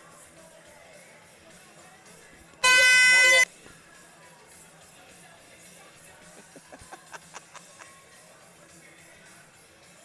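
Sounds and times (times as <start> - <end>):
high horn blast: 2.6 - 3.5.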